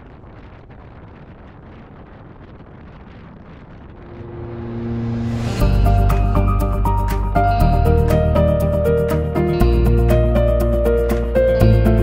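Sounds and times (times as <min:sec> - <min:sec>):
motorcycle engine drone: 0:00.0 - 0:12.0
wind rushing over microphone: 0:00.0 - 0:12.0
background music: 0:04.3 - 0:12.0.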